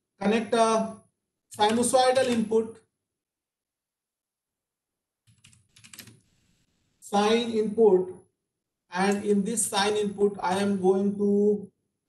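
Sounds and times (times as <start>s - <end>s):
typing on computer keyboard: 1.6s - 2.5s, 5.2s - 6.2s.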